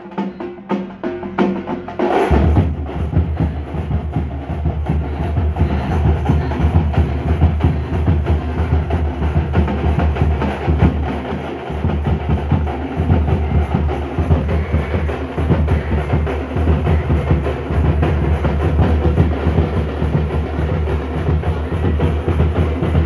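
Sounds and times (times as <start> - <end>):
drum band playing fast rhythm: 0.0 - 23.0.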